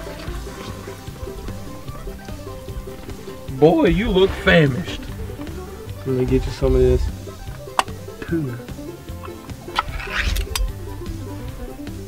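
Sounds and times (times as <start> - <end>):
background music: 0.0 - 12.0
can lid peeling off: 9.2 - 10.8.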